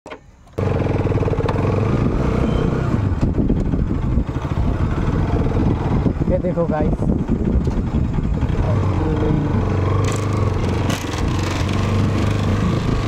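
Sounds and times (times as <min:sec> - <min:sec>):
motorcycle engine running: 0:00.6 - 0:13.0.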